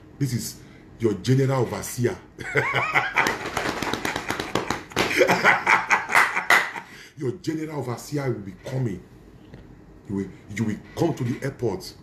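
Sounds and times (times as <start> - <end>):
man laughing heartily: 2.4 - 7.0.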